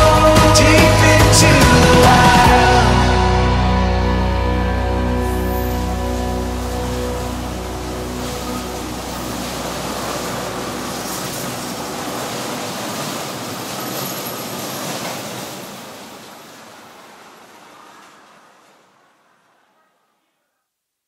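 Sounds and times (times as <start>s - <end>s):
background music: 0.0s - 13.0s
light rail train on tracks: 5.4s - 20.2s.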